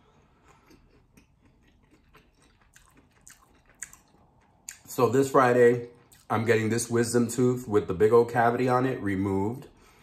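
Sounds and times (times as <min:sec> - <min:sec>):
chewing with mouth clicks: 0:00.2 - 0:05.0, 0:05.8 - 0:06.4.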